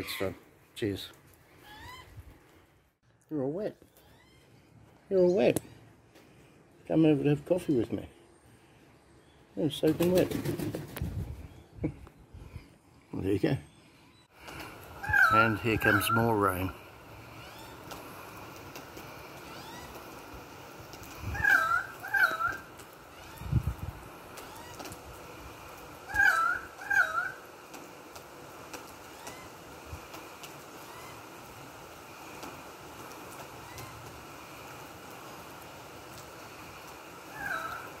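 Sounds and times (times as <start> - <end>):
bird calls: 11.4 - 18.0, 21.2 - 23.5, 26.0 - 27.5, 29.1 - 29.6, 30.7 - 31.4, 33.4 - 34.1, 37.3 - 38.0
steady rain falling: 14.4 - 38.0.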